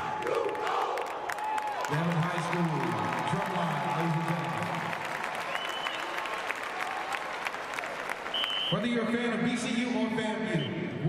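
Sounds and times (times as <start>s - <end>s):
crowd applause: 0.0s - 8.7s
shrill whistles: 5.5s - 6.4s, 8.3s - 8.8s.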